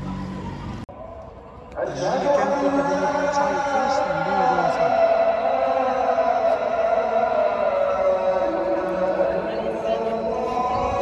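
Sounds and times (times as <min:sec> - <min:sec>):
voice chanting a long note: 0:02.1 - 0:11.0.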